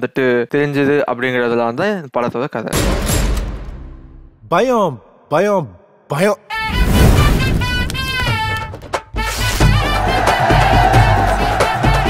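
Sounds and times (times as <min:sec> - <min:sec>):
man speaking: 0:04.4 - 0:06.5.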